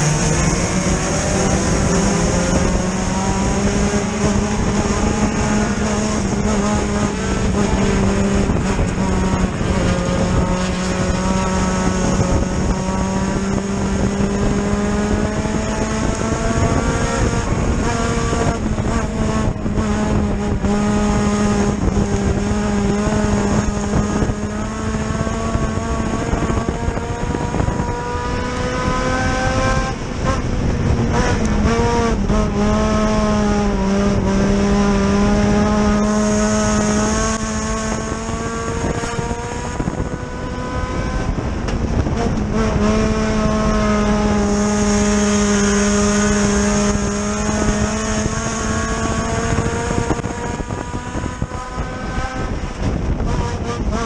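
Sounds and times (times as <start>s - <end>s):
race car engine running: 0.0s - 54.0s.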